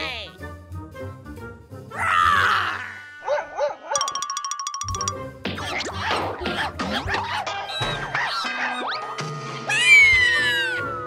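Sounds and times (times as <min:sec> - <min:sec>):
bouncy background music: 0:00.0 - 0:02.0, 0:04.0 - 0:11.0.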